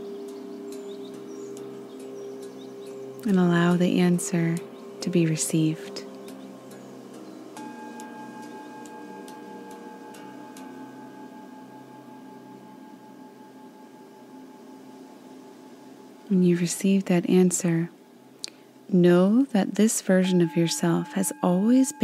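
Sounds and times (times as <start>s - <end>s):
ambient drone music: 0.0s - 17.0s.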